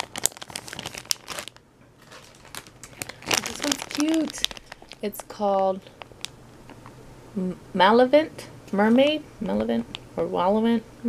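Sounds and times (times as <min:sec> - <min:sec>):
plastic bag crinkling: 0:00.0 - 0:07.0.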